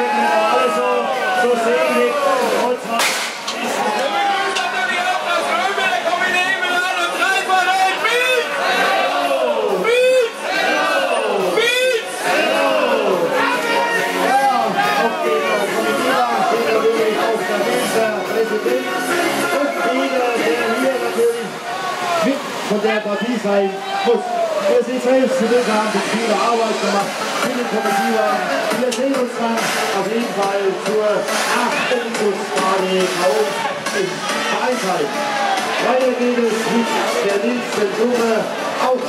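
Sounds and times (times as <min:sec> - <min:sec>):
voices talking: 0:00.0 - 0:39.0
confetti cannon blast: 0:03.0 - 0:03.5
sharp cracks: 0:03.0 - 0:03.6
steady rushing noise: 0:10.4 - 0:39.0.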